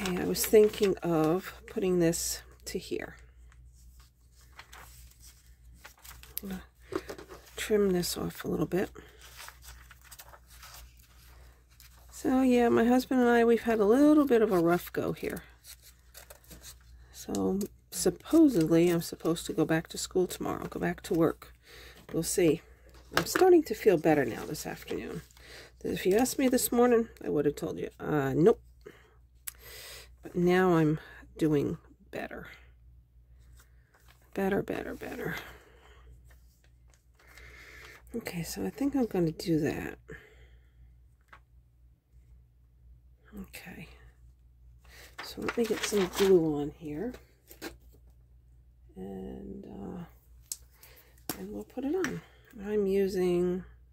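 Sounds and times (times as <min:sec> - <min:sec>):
magazine page rustling: 0:00.0 - 0:27.2, 0:44.9 - 0:48.0
low steady hum: 0:00.0 - 0:53.9.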